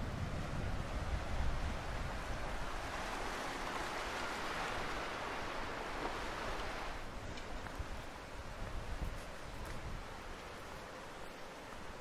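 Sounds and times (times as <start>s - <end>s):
wind buffeting microphone: 0.0s - 11.0s
waves washing over pebbles: 1.1s - 8.7s.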